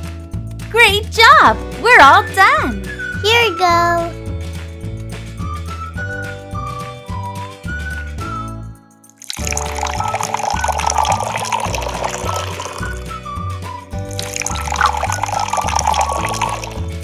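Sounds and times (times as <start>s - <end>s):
background music: 0.0s - 17.0s
milkshake pouring into a glass: 9.2s - 13.1s, 14.1s - 17.0s.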